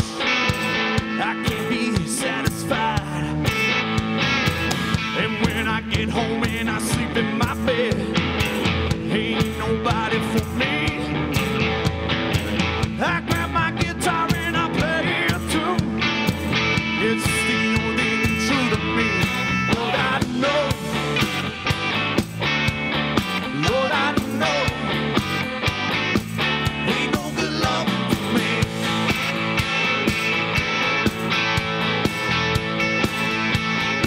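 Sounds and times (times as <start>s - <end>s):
bending electric guitar lines: 0.0s - 34.0s
rock band playing live: 0.0s - 34.0s.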